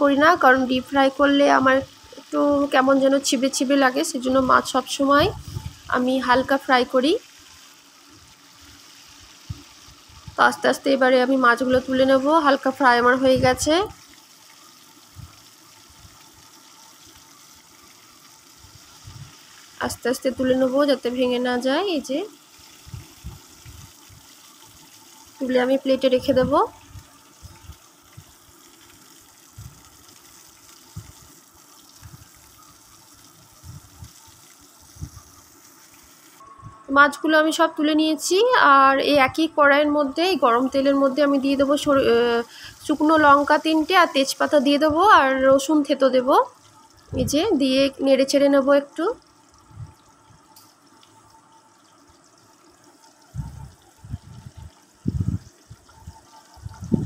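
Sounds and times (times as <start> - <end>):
hot oil sizzling: 0.0 - 57.0.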